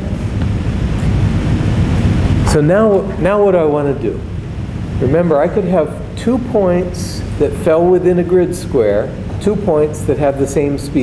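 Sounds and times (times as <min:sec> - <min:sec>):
low rumble of room noise: 0:00.0 - 0:11.0.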